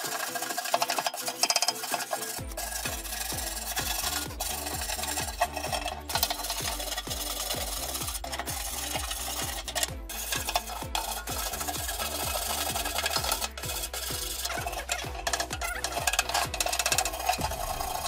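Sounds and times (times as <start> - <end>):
scraper blade rasping on metal: 0.0 - 18.0.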